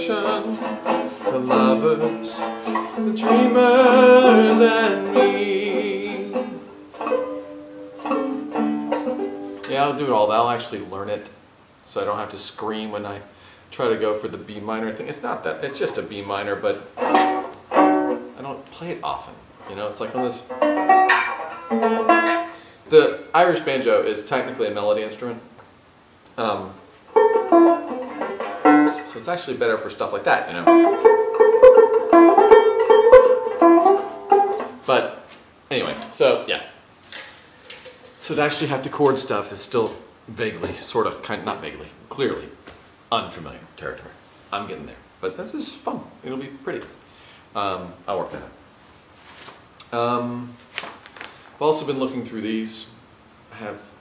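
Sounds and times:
banjo chords ringing: 0:00.0 - 0:10.6, 0:15.4 - 0:22.7, 0:27.1 - 0:35.2.

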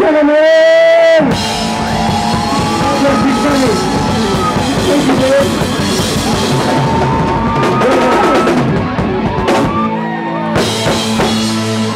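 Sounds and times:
rock band playing: 0:01.2 - 0:11.9.

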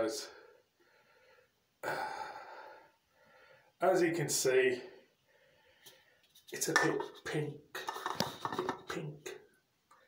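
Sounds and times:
man sighing: 0:01.8 - 0:02.8.

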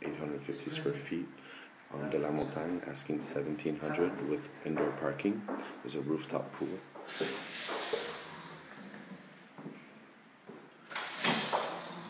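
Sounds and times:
faucet water spraying into sink: 0:07.0 - 0:09.0, 0:10.8 - 0:12.0.

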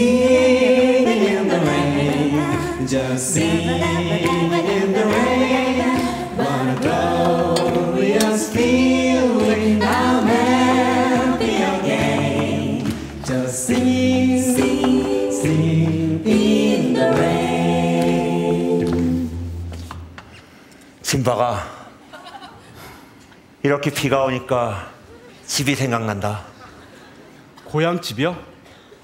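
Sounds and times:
chorus singing in harmony: 0:00.0 - 0:19.8.

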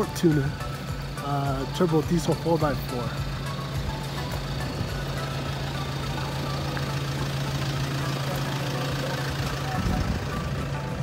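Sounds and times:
diesel engine idling: 0:00.0 - 0:11.0.

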